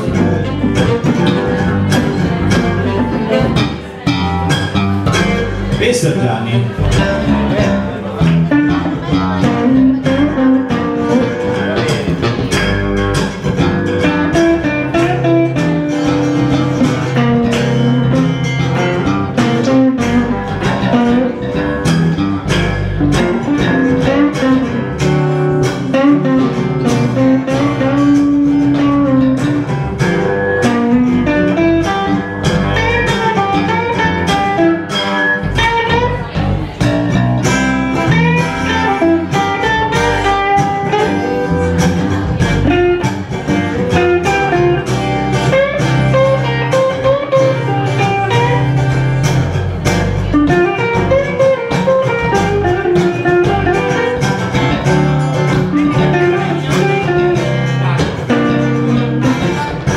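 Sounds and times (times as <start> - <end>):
blues band playing: 0.0 - 59.9
walking bass: 0.0 - 59.9.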